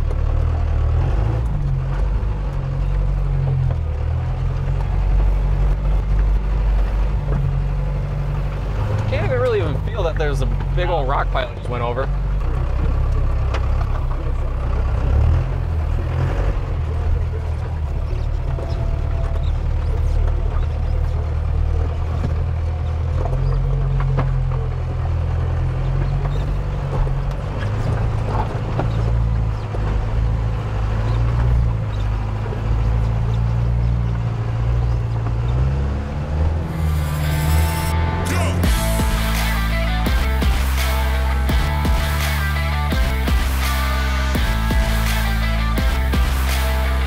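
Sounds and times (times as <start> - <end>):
diesel engine running under load: 0.0 - 47.0.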